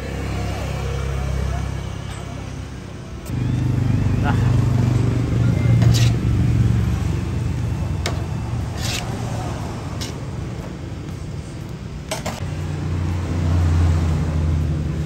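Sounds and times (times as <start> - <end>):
vehicle engine humming: 0.0 - 15.0.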